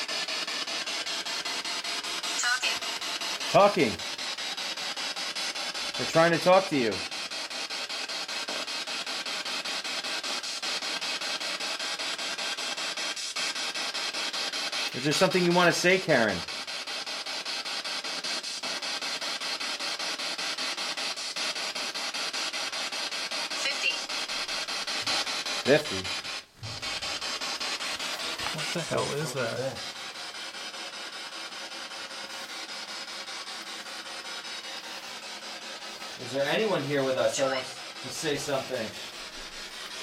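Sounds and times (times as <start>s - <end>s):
chopped radio static: 0.0s - 40.0s.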